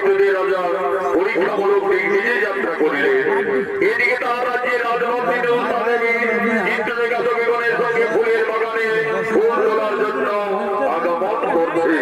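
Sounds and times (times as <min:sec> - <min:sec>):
amplified voice over loudspeakers: 0:00.0 - 0:12.0.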